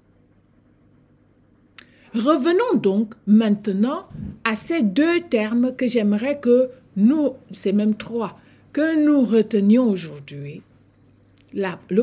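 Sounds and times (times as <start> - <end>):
mouth click: 1.8 - 2.0.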